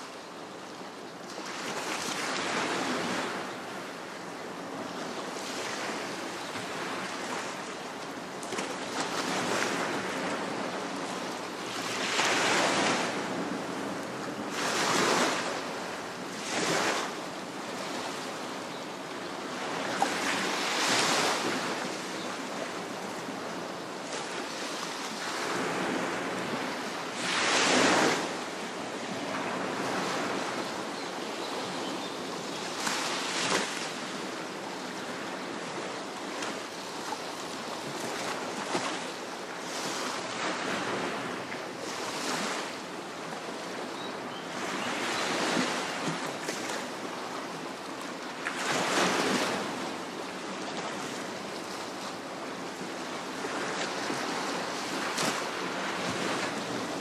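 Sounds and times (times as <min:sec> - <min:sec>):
surf washing on shore: 0:00.0 - 0:57.0.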